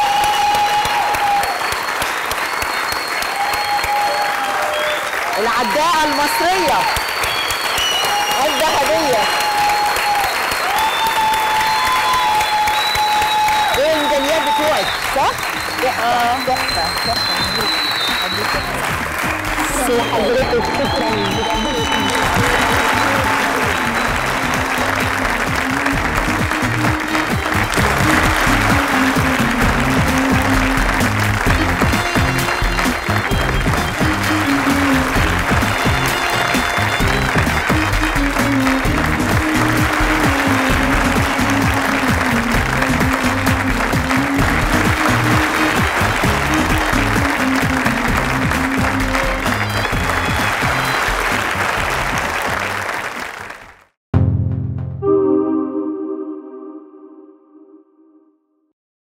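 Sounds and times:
audience applauding: 0.0 - 54.0
music: 5.8 - 53.5, 54.2 - 57.5.

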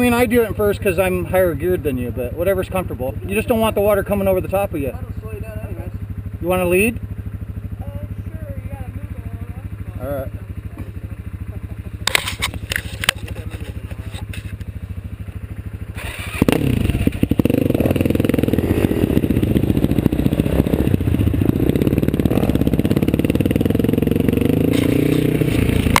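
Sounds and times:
quad engine running: 0.0 - 26.0
sharp clicks: 12.0 - 14.7.

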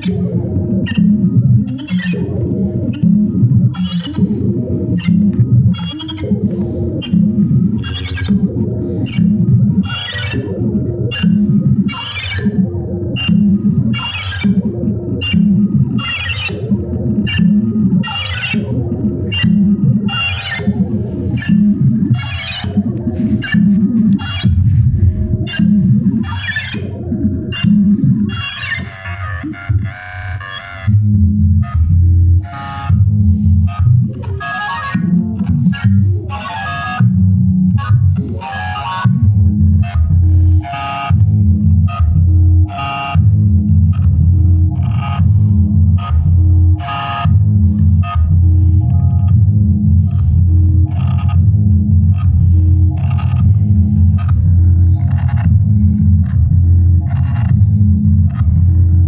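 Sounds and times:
synth bass line: 0.0 - 59.0.

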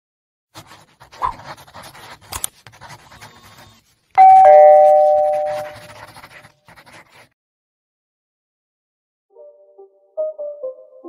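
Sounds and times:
two-note doorbell chime: 4.2 - 5.7.

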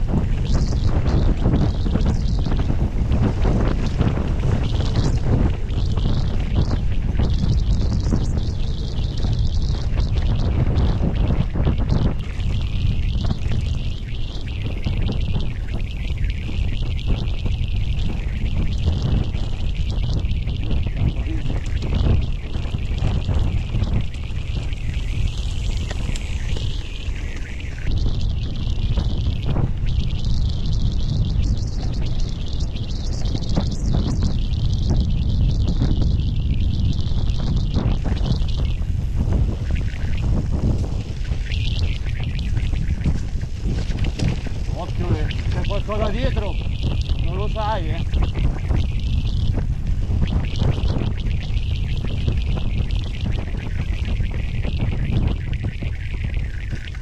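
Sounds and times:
bike tyres on dirt track: 0.0 - 57.0
wind rumble on microphone: 0.0 - 57.0.

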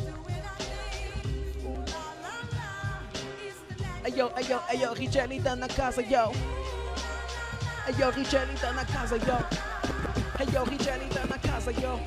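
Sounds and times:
hip hop beat with deep bass: 0.0 - 12.0
person singing sliding vocal: 0.0 - 12.0.

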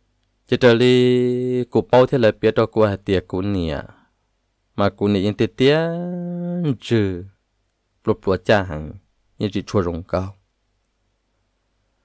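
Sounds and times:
person speaking: 0.4 - 4.1, 4.7 - 7.4, 8.0 - 10.5.

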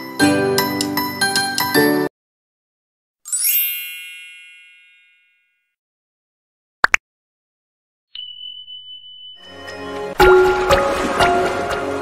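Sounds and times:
bright chime ding: 8.2 - 9.8.

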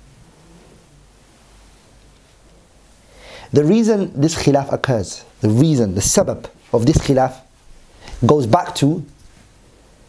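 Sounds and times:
faint hiss: 0.0 - 10.0.

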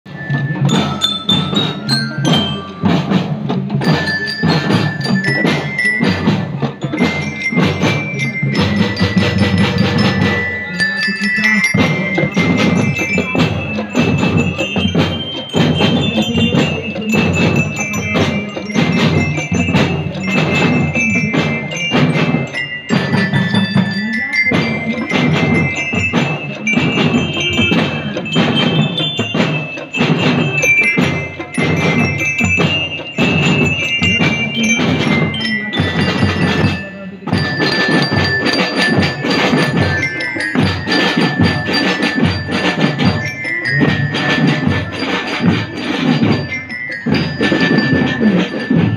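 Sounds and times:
snare drum beats: 0.1 - 10.8, 11.4 - 48.9
bass drum beats: 0.1 - 48.9
glockenspiel melody: 0.1 - 48.9.

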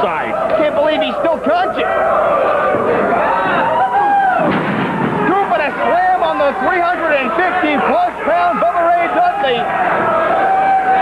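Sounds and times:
man commentating: 0.0 - 1.9, 5.2 - 9.7
crowd noise: 0.0 - 11.0.

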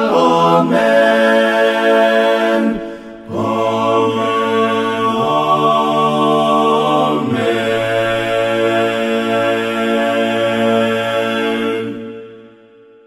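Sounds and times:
voices singing a hymn a cappella: 0.0 - 12.5.

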